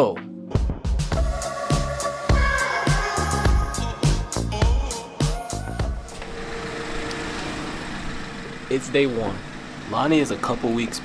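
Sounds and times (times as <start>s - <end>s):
car engine idling: 5.6s - 11.0s.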